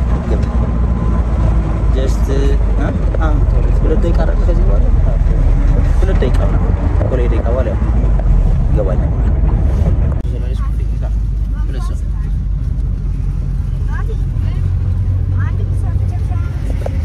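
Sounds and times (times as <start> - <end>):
vehicle engine and road rumble: 0.0 - 17.0
people talking: 2.0 - 5.2, 10.3 - 12.4, 13.8 - 17.0.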